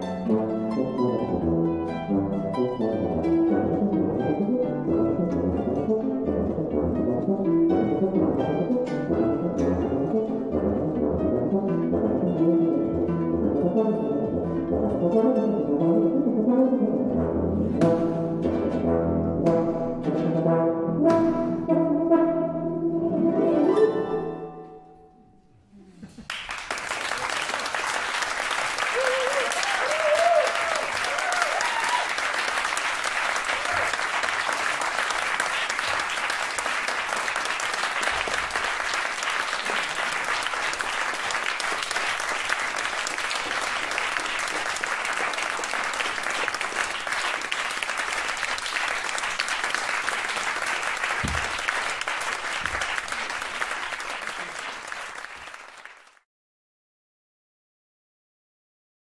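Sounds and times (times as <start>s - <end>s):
audience applauding: 26.0s - 56.3s.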